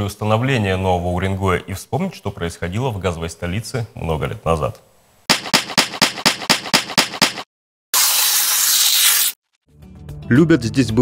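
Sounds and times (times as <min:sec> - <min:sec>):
loud burst of hiss: 0:08.0 - 0:09.4.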